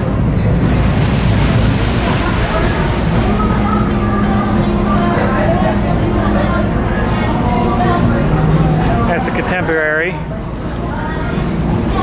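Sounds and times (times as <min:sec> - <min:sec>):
boat engine rumble: 0:00.0 - 0:12.0
water washing past hull: 0:00.0 - 0:12.0.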